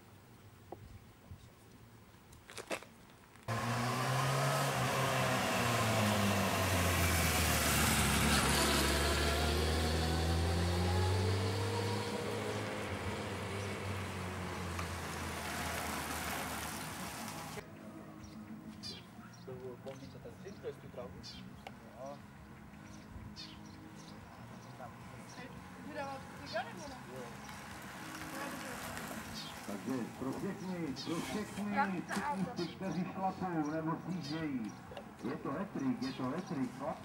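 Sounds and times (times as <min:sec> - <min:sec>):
loud close vehicle engine: 0:03.5 - 0:17.6, 0:23.0 - 0:37.0.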